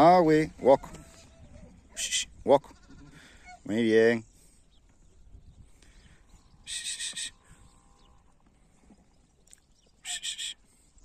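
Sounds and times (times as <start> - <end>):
sheep bleating: 0.9 - 3.5.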